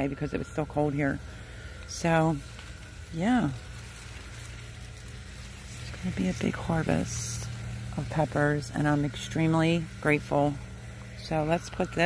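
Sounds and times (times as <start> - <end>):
faint background hum: 0.0 - 12.0
low hiss: 0.0 - 12.0.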